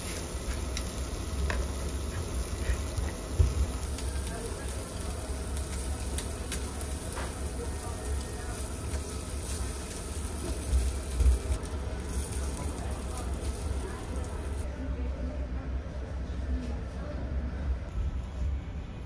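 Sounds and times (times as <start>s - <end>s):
meat sizzling on a grill: 0.0s - 14.7s
steady low hum: 0.0s - 19.0s.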